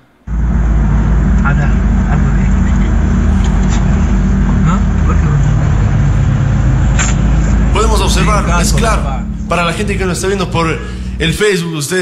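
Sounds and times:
car engine and road noise: 0.0 - 11.7.

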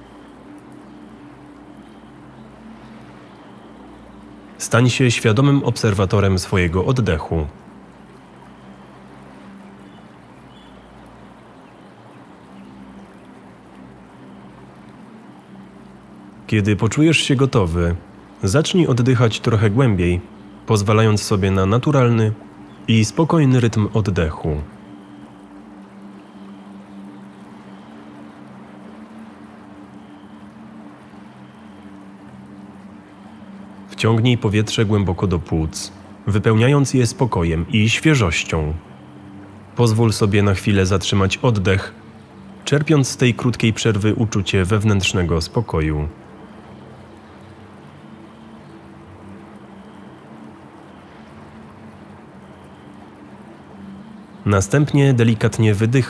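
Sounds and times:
ambient drone music: 0.0 - 56.0
water-like wash of noise: 0.0 - 56.0.

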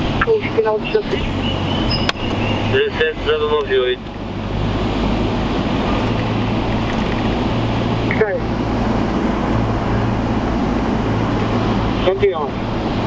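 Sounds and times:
constant low hum: 0.0 - 13.0
vehicle engine and road noise: 0.0 - 13.0.

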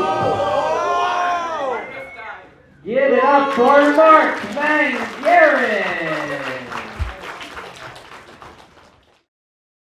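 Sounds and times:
audience applause: 3.4 - 9.3.

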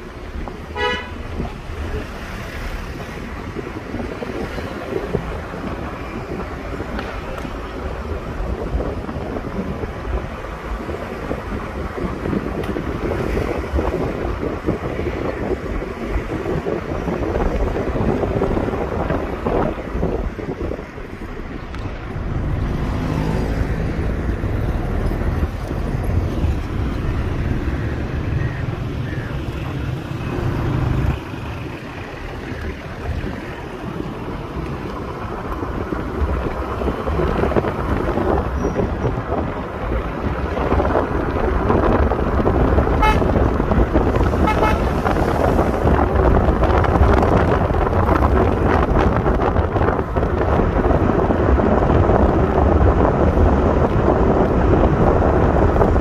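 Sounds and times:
car road and engine noise: 0.0 - 56.0
deeper engine hum: 0.0 - 56.0
wind buffeting microphone: 0.0 - 56.0.

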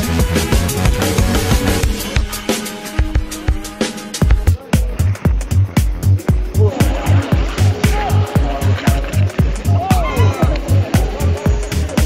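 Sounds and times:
music with deep bass thumps: 0.0 - 12.0.

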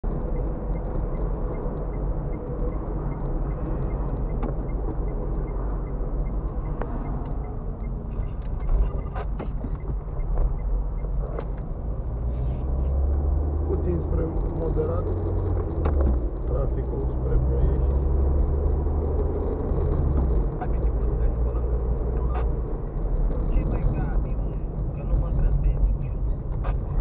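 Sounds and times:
engine and road noise rumble: 0.0 - 27.0.

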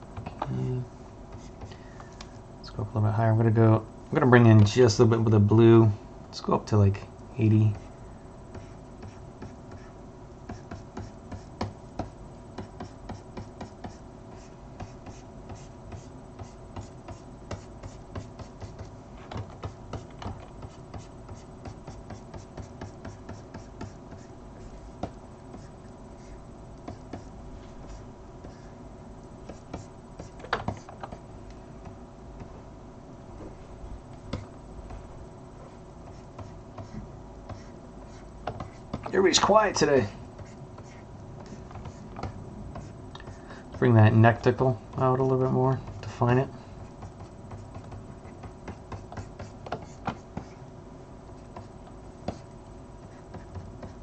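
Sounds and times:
low electrical hum: 0.0 - 54.0
stylus tapping and scratching: 1.3 - 2.4, 7.7 - 32.6, 34.1 - 45.1, 45.8 - 46.2, 46.8 - 50.6, 51.3 - 54.0.

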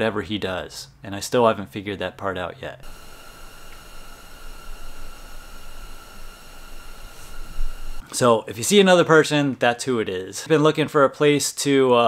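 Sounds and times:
workshop room hiss: 2.8 - 8.0.

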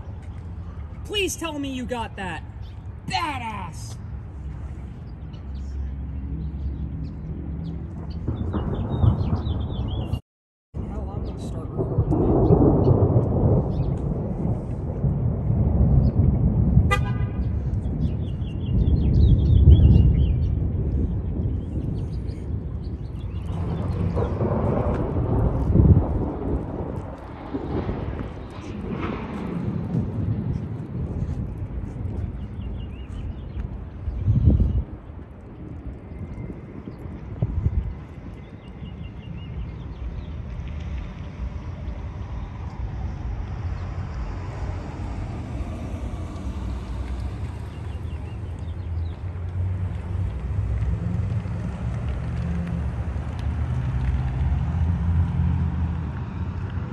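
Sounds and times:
thunder rumbling: 5.9 - 10.2, 10.8 - 56.9.

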